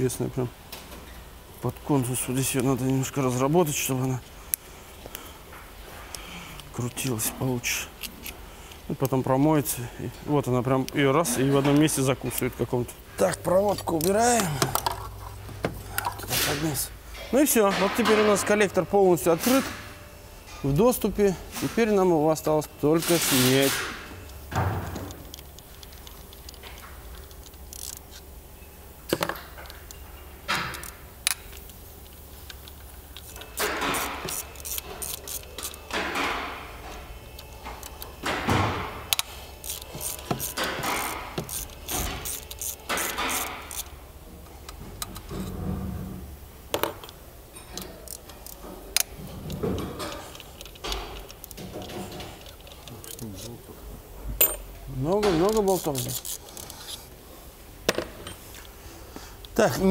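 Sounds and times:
low steady hum: 0:00.0 - 0:42.9
ratchet clicking: 0:27.2 - 0:28.1, 0:30.7 - 0:36.0, 0:39.1 - 0:44.0, 0:55.5 - 0:57.0
metal tools clinking: 0:54.4 - 0:57.0, 0:57.9 - 0:58.7.

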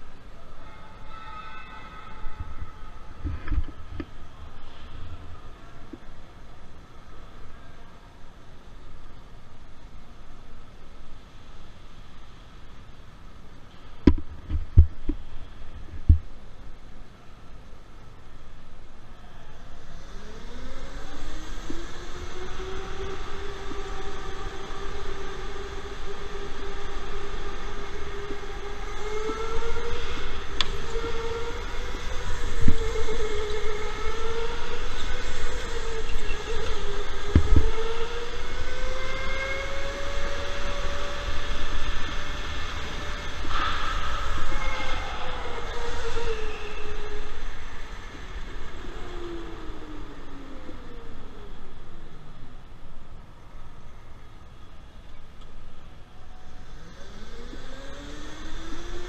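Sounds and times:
electric go-kart motor whining: 0:19.8 - 0:52.5, 0:55.8 - 0:59.0.

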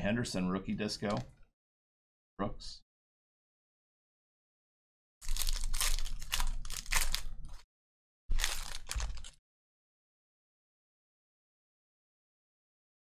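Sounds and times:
foil wrapper tearing and crinkling: 0:05.2 - 0:07.6, 0:08.3 - 0:09.4.

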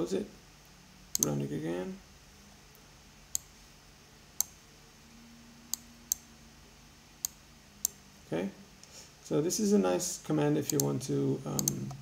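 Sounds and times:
computer mouse clicking: 0:01.1 - 0:01.3, 0:10.7 - 0:10.9, 0:11.6 - 0:12.0.

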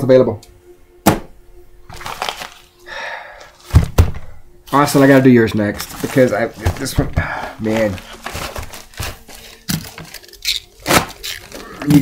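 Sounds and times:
plastic mailer crinkling: 0:01.9 - 0:02.8, 0:04.7 - 0:12.0.

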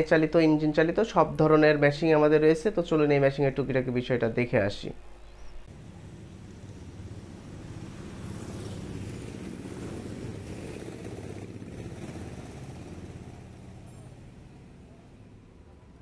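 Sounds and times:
motor engine running: 0:05.7 - 0:16.0.

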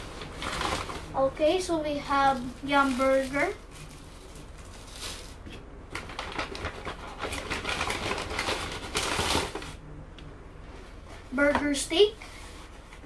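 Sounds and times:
food packaging crinkling: 0:00.0 - 0:01.2, 0:01.9 - 0:09.8.

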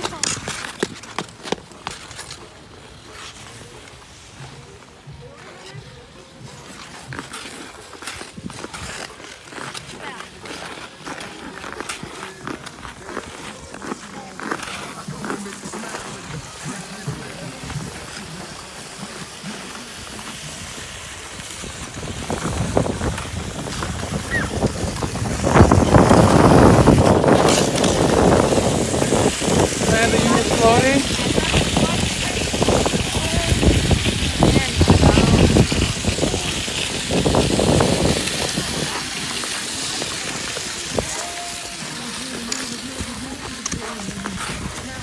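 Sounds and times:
ice skates scraping on ice: 0:00.0 - 0:45.0.

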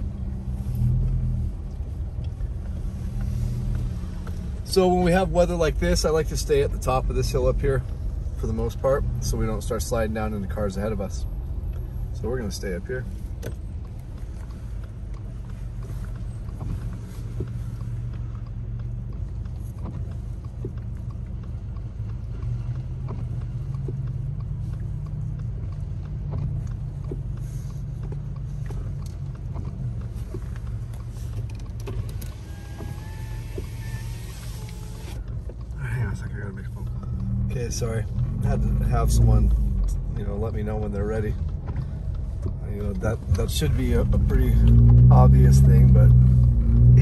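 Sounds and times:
car engine rumble from inside: 0:00.0 - 0:47.0.

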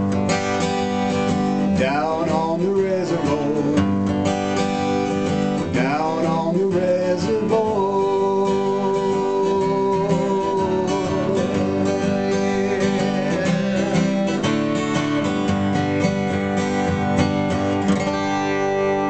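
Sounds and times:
acoustic guitar strumming: 0:00.0 - 0:19.0.

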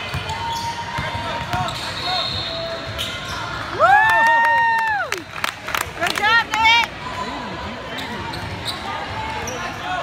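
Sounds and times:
sneaker squeaks: 0:00.0 - 0:03.7, 0:07.9 - 0:10.0.

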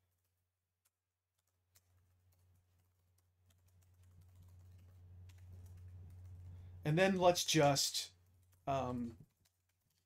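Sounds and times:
keyboard typing clicks: 0:00.1 - 0:06.6, 0:08.3 - 0:10.0
low steady hum: 0:01.7 - 0:10.0.

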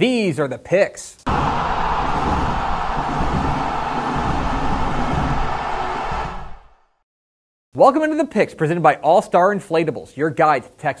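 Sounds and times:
rushing roar with deep rumble: 0:01.3 - 0:06.8.

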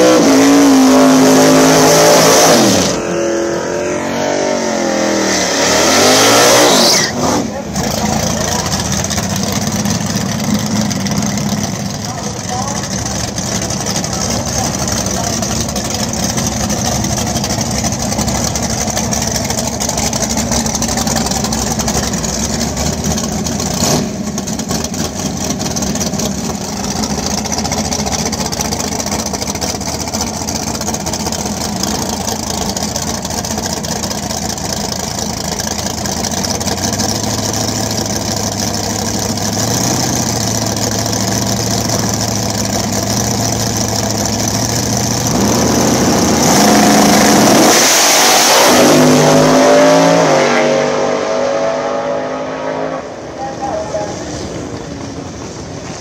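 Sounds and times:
drag car engine revving: 0:00.0 - 0:56.0.

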